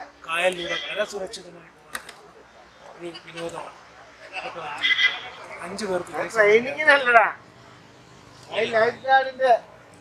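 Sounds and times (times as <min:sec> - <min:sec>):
man talking: 0:00.2 - 0:02.0, 0:08.5 - 0:09.7.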